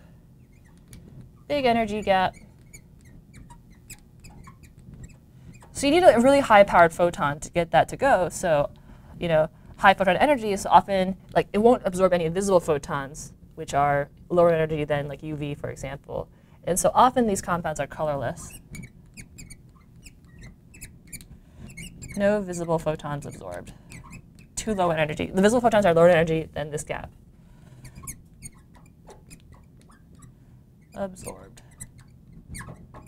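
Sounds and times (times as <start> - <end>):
marker squeaking on board: 0.4 - 5.8, 18.4 - 24.8, 27.6 - 33.0.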